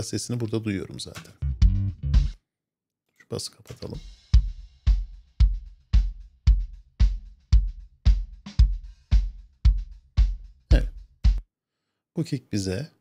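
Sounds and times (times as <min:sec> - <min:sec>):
kick drum: 0:01.6 - 0:02.4, 0:04.4 - 0:11.4.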